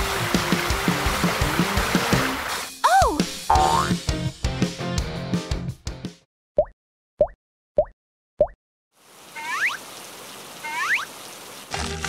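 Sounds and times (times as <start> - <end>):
rain hiss sound effect: 0.0 - 3.0, 9.0 - 12.0
background music: 0.0 - 6.1, 11.7 - 12.0
cartoon plop sound effects: 3.0 - 4.0.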